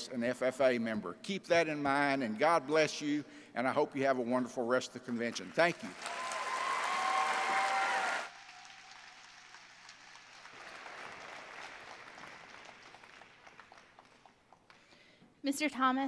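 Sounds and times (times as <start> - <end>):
audience applause: 5.7 - 14.4.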